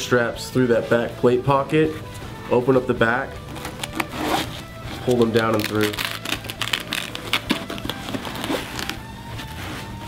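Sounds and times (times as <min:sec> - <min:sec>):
soft background music: 0:00.0 - 0:10.0
fabric and straps rustling: 0:03.4 - 0:10.0.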